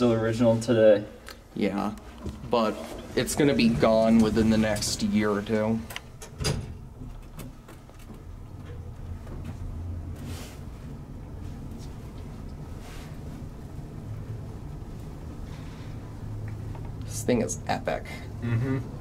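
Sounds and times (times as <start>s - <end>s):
elevator machinery humming: 2.4s - 19.0s.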